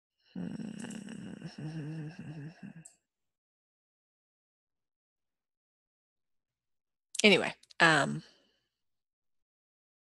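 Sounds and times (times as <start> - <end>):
woman's low vocal murmur: 0.4 - 2.8.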